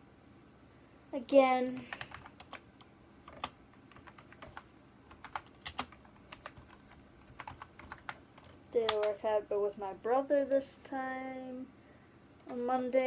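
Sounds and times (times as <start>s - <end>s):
computer keyboard typing: 1.8s - 9.2s.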